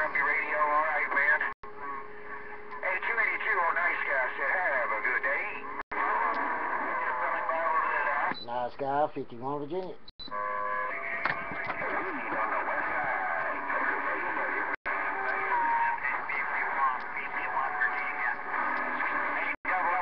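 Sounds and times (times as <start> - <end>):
garbled radio voices: 0.0 - 20.0
radio whistle tones: 10.2 - 20.0.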